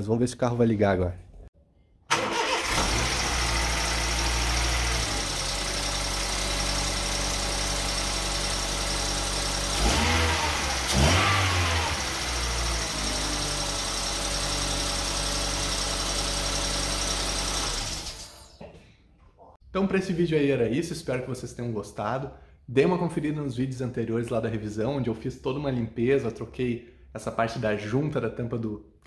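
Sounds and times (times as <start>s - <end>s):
engine revving: 2.1s - 18.4s
car engine starting and idling: 2.1s - 18.6s.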